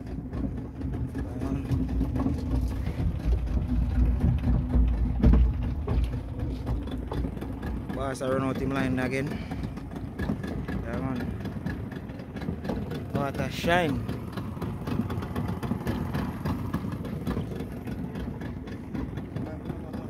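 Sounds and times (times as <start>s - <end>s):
outboard motor droning: 0.0s - 20.0s.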